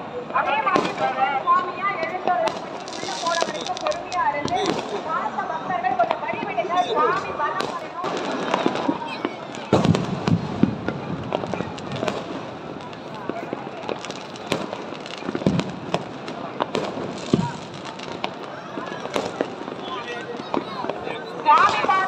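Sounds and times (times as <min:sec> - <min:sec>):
crowd voices: 0:00.0 - 0:22.0
fireworks cracking and banging: 0:00.0 - 0:22.0.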